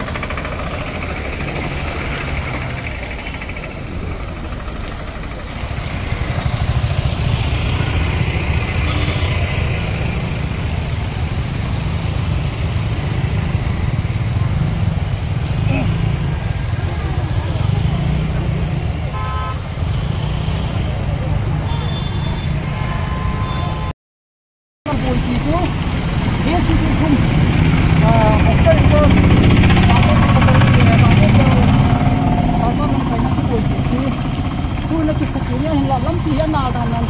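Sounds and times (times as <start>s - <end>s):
car engines running: 0.0s - 22.0s, 24.9s - 37.0s
motor scooter engines: 0.0s - 23.9s, 24.9s - 37.0s
horn toot: 18.8s - 20.7s.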